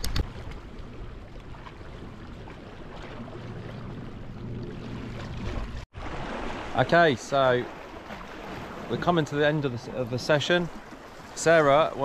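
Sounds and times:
sea waves on rocky shore: 0:00.0 - 0:12.0
wind: 0:00.0 - 0:12.0.

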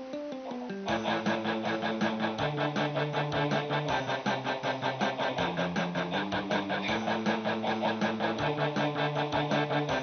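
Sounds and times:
electric guitar strumming chords: 0:00.0 - 0:10.0.

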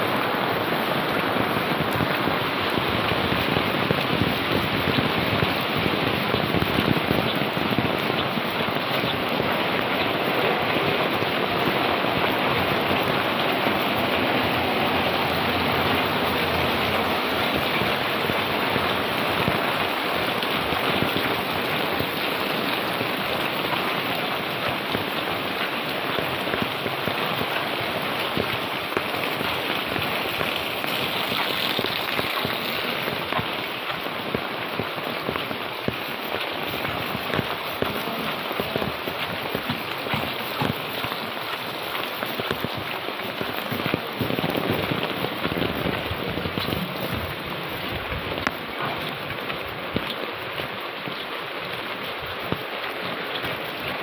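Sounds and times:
heavy rain on umbrella: 0:00.0 - 0:54.0.

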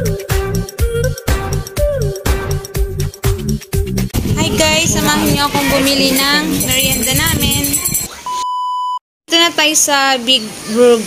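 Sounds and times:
woman talking: 0:04.3 - 0:08.0, 0:09.3 - 0:11.0
high pure beep: 0:06.9 - 0:09.0.

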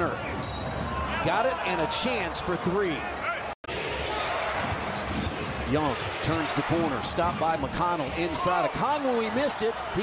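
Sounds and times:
crowd noise: 0:00.0 - 0:10.0
basketball court sounds: 0:03.6 - 0:10.0.

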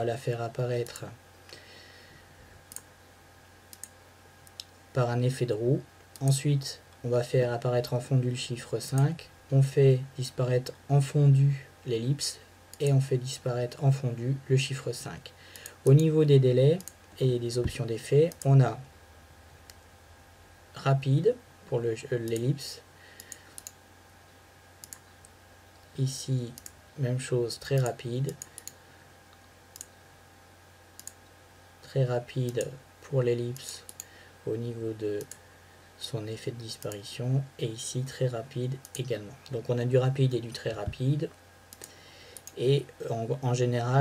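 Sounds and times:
steady low hum: 0:00.0 - 0:44.0
faint mouse clicks: 0:02.7 - 0:02.9, 0:03.7 - 0:04.8, 0:15.6 - 0:16.1, 0:23.2 - 0:23.8, 0:24.8 - 0:25.4, 0:26.6 - 0:26.8, 0:27.8 - 0:30.0, 0:31.0 - 0:31.4, 0:35.2 - 0:35.4, 0:41.7 - 0:42.6.

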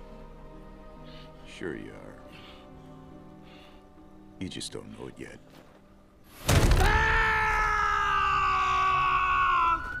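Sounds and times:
man screaming: 0:06.8 - 0:10.0.

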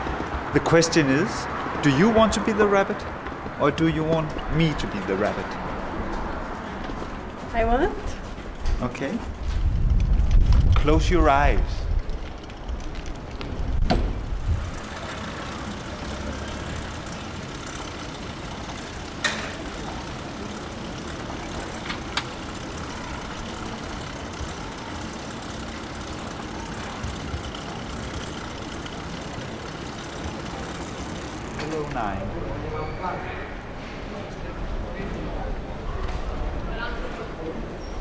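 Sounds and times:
city street noise: 0:00.0 - 0:38.0.

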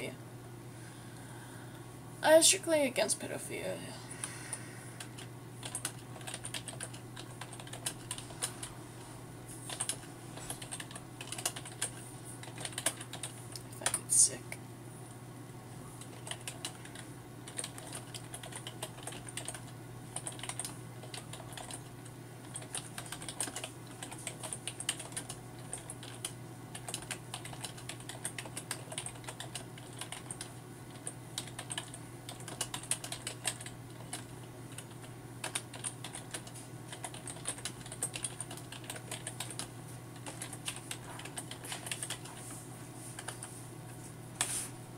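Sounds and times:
steady low hum: 0:00.0 - 0:44.9.

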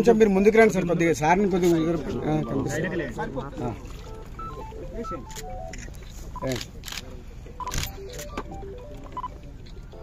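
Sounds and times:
short electronic beeps: 0:04.1 - 0:06.6, 0:09.1 - 0:10.0.

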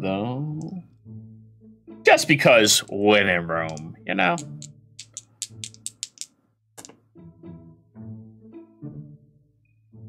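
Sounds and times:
soft plucked background music: 0:00.0 - 0:10.0
sharp clicks: 0:03.7 - 0:06.9.

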